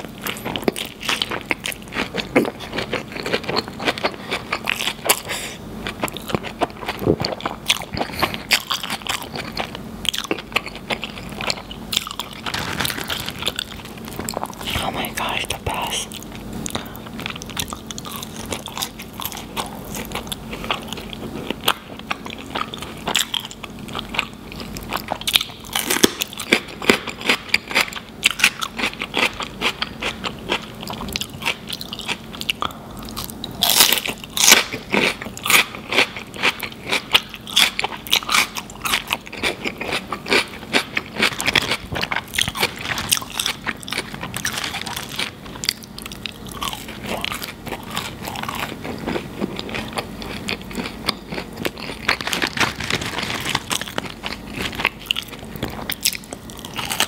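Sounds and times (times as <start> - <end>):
chewing and biting food: 0.0 - 57.0.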